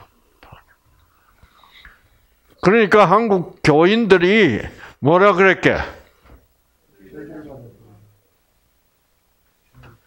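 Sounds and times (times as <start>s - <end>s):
breath on a headset microphone: 0.6s - 2.2s.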